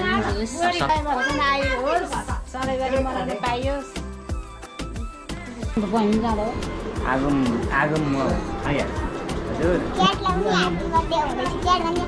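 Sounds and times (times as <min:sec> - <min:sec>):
children chattering and calling out: 0:00.0 - 0:03.2, 0:05.6 - 0:12.0.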